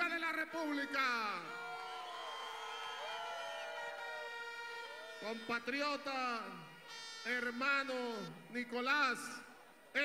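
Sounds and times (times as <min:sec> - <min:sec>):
crowd cheering and whooping: 0:01.4 - 0:05.4.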